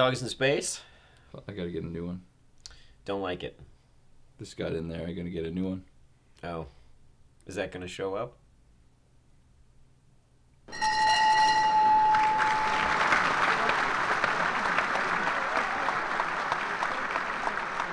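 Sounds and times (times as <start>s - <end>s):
steady high tone: 10.7s - 15.0s
crowd applause: 11.7s - 17.9s.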